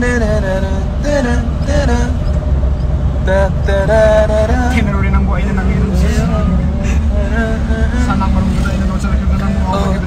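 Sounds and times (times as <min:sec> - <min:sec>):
car engine and road noise: 0:00.0 - 0:10.0
men talking: 0:04.7 - 0:07.1, 0:07.9 - 0:10.0.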